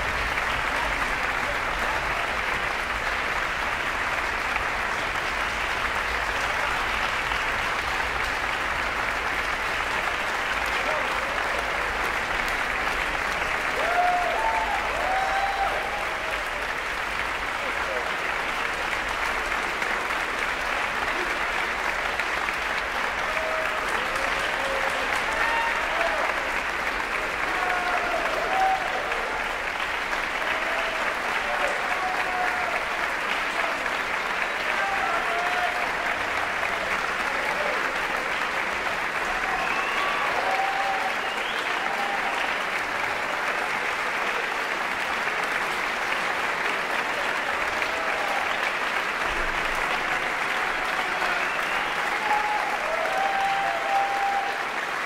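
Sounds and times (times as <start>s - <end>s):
audience applauding: 0.0s - 55.0s
audience shouts and cheers: 10.6s - 16.9s, 23.1s - 38.4s, 39.0s - 43.7s, 47.1s - 55.0s.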